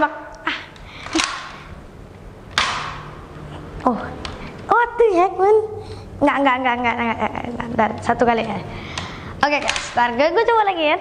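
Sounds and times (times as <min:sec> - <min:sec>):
dart blaster clacks: 0:02.5 - 0:03.1.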